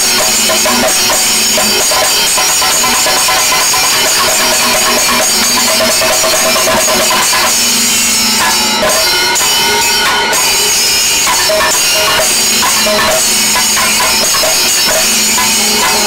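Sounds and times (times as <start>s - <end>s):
brass hand cymbals clashing: 0.0s - 16.0s.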